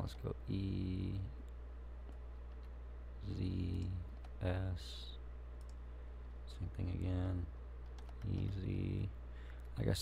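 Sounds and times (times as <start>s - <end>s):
steady low hum: 0.0s - 10.0s
keyboard and mouse clicks: 1.4s - 2.8s, 7.8s - 8.7s.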